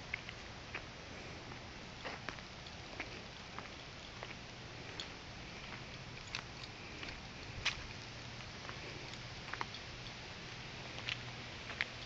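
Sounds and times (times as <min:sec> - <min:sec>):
footsteps on sand and dry leaves: 0:00.0 - 0:12.0
outdoor background noise: 0:00.0 - 0:12.0.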